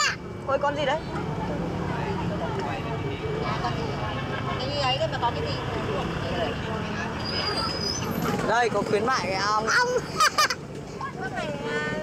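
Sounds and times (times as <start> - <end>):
background talk of voices: 0.0 - 12.0.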